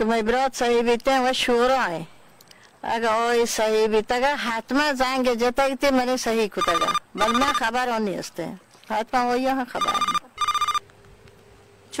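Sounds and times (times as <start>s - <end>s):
phone ringtone beeps: 6.6s - 7.7s, 9.7s - 10.8s.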